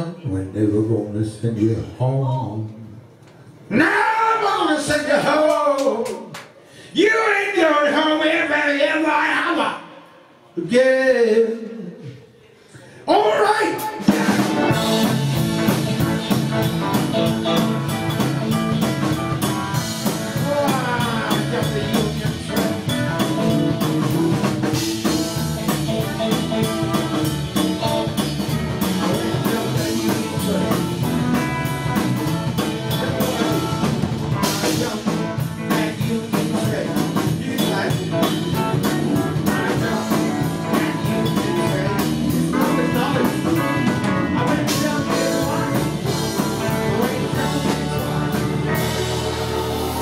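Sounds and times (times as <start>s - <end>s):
blues band playing: 13.4s - 50.0s
steady drumming: 13.8s - 50.0s.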